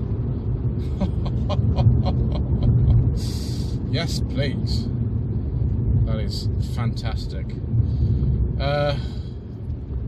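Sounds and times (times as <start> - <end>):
man laughing: 0.8 - 3.2.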